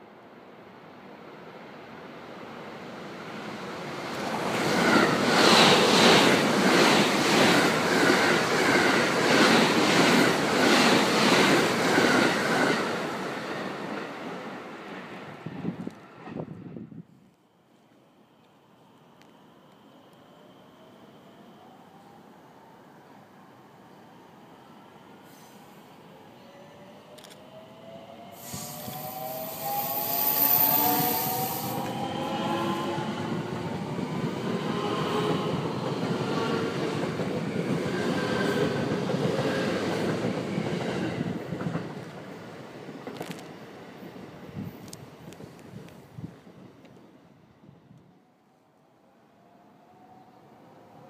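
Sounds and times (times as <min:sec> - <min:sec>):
train cars rushing past: 0:02.9 - 0:16.8, 0:26.5 - 0:44.5
sharp clicks of train: 0:04.0 - 0:13.0, 0:27.0 - 0:27.5, 0:28.4 - 0:29.2, 0:35.6 - 0:43.8, 0:44.8 - 0:46.0, 0:46.8 - 0:47.1.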